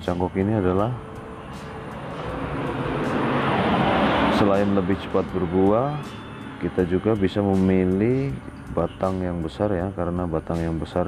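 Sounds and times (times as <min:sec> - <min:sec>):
passing vehicle engine rumble: 0:00.0 - 0:11.0.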